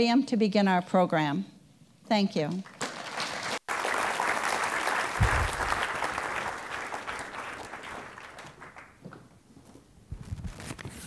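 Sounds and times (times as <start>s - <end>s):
audience applauding: 2.7s - 9.0s.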